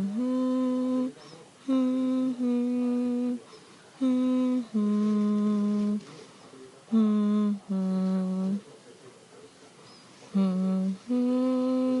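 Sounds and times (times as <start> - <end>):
person humming a lullaby: 0.0 - 6.0, 6.9 - 8.6, 10.4 - 12.0.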